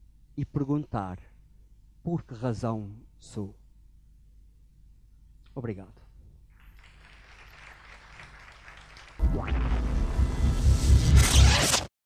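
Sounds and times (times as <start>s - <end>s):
deep pulsing bass: 9.2s - 11.3s.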